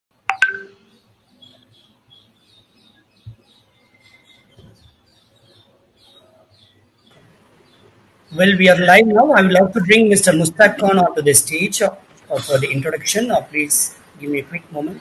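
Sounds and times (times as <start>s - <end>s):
faint high chirping: 0.2s - 15.0s.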